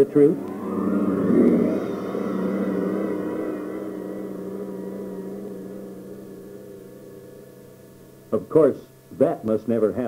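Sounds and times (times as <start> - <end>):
steady hum: 0.0 - 8.8.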